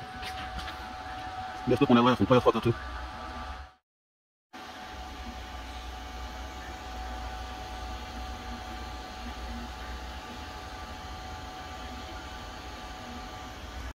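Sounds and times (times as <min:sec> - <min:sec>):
low machine hum: 0:00.0 - 0:03.8, 0:04.6 - 0:14.0
fan-like machine hiss: 0:04.6 - 0:13.9.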